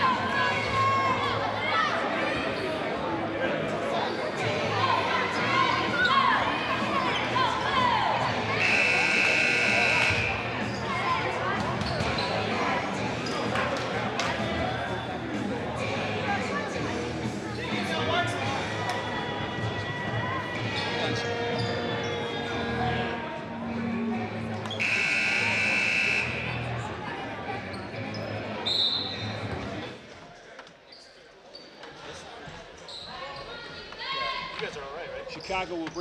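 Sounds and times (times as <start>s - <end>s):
crowd chatter: 0.0s - 36.0s
loud buzzer tone: 8.6s - 10.4s, 24.8s - 26.6s.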